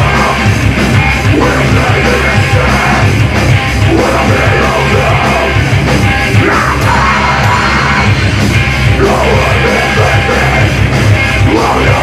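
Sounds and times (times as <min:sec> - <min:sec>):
drums: 0:00.0 - 0:12.0
electric guitars: 0:00.0 - 0:12.0
yelled vocals: 0:00.0 - 0:12.0.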